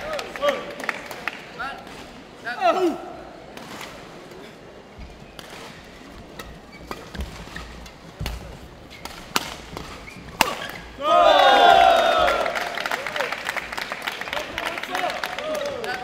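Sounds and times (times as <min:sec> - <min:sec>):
rackets hitting shuttlecock: 0:05.3 - 0:11.0
crowd shouting and cheering: 0:10.9 - 0:16.0.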